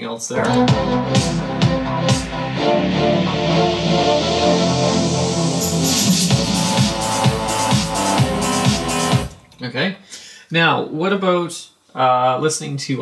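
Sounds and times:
synth pad chords: 0.4s - 9.6s
kick drum beat: 0.5s - 2.6s, 6.2s - 9.4s.

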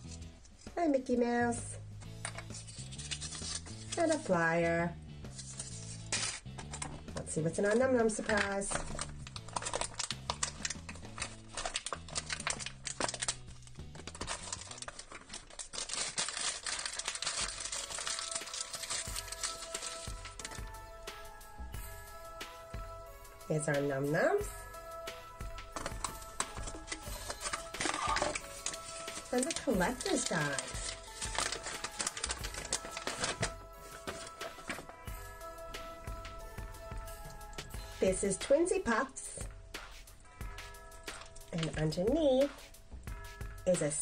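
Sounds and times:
background music: 0.0s - 44.0s
paper and packaging rustling: 2.2s - 4.4s, 5.3s - 21.1s, 25.4s - 35.1s, 40.9s - 42.6s.

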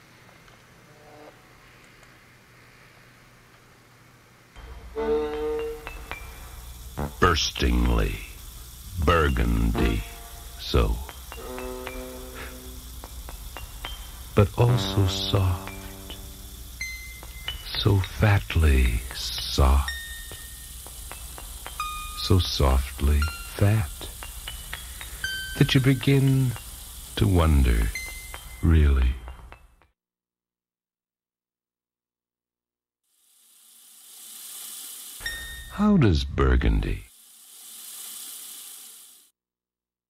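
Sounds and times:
soft even hiss: 1.4s - 29.6s, 33.2s - 36.0s
soft ringing chime tones: 4.7s - 8.1s, 9.1s - 29.7s, 35.2s - 36.0s
faint ticks: 5.8s - 29.6s.

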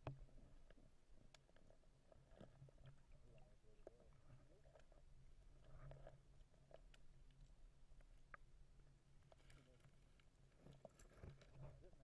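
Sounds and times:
low underwater hum: 0.0s - 12.0s
soft underwater clicks and knocks: 0.0s - 12.0s.

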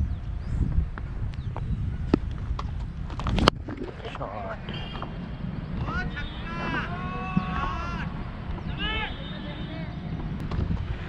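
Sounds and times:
wind on microphone: 0.0s - 11.0s
faint shouts: 5.8s - 9.6s.

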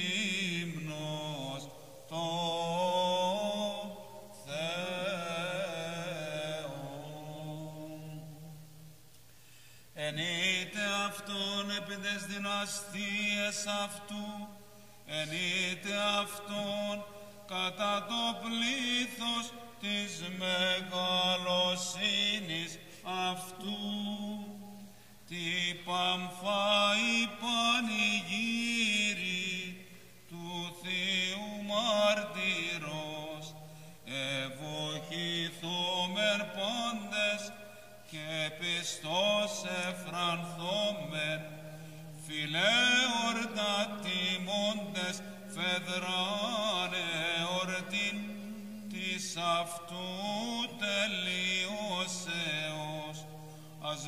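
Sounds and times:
man chanting a hymn: 0.0s - 8.9s, 10.0s - 54.0s.

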